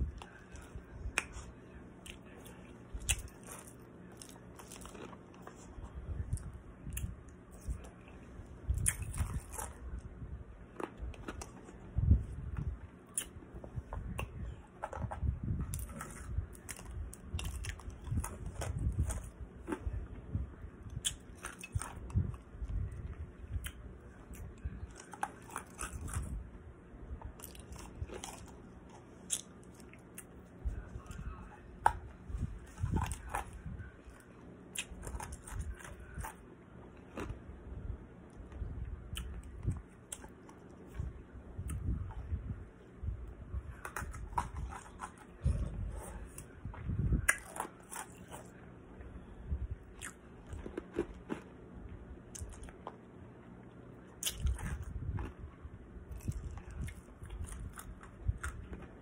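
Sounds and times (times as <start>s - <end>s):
ice crunched and chewed: 0.0s - 10.1s, 10.7s - 20.0s, 20.9s - 26.4s, 27.3s - 37.4s, 43.7s - 48.6s, 49.9s - 51.5s, 52.3s - 53.0s, 54.2s - 55.5s, 56.1s - 59.0s
ice crunching in mouth: 8.7s - 9.8s, 23.6s - 26.4s, 47.2s - 48.5s, 54.2s - 55.4s.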